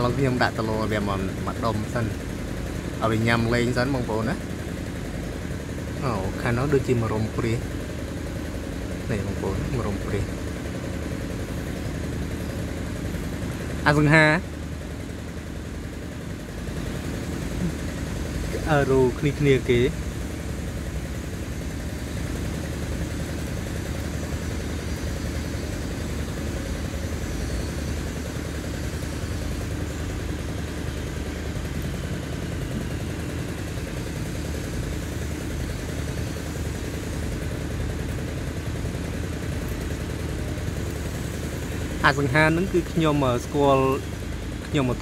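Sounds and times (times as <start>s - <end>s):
small engine idling: 0.0s - 45.0s.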